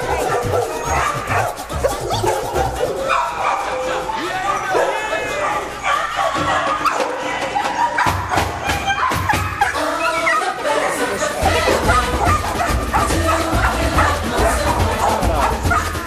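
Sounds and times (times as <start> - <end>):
dogs barking: 0.0 - 16.0
music playing: 0.0 - 16.0.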